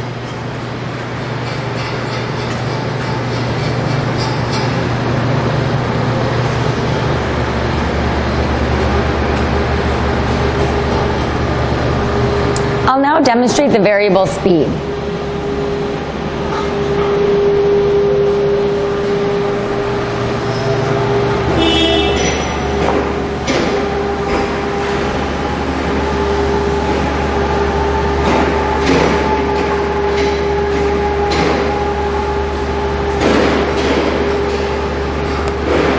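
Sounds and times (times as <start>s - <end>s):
motor whine with low hum: 0.0s - 35.9s.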